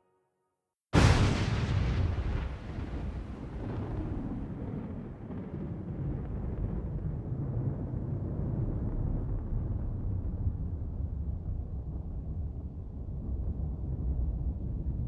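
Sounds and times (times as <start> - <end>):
steady low rumble: 2.2 - 15.0.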